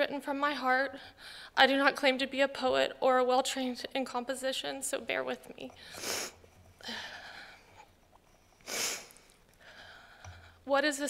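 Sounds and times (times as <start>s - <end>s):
woman sniffing: 8.6s - 9.3s.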